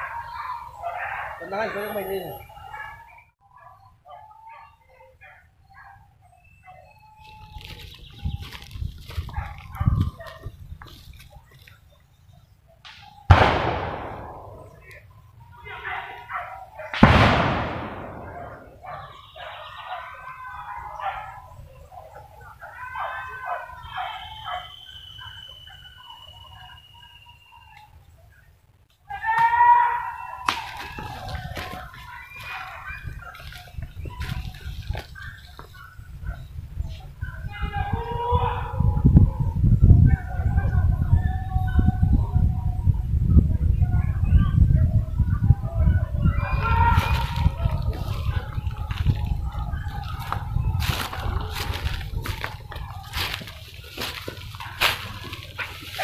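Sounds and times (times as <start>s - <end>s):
animal or bird calls: 0.0s - 13.4s, 17.8s - 28.5s, 29.1s - 42.8s, 43.8s - 56.0s
voices calling out: 0.0s - 56.0s
loud sudden bangs: 12.9s - 14.9s, 17.0s - 18.8s.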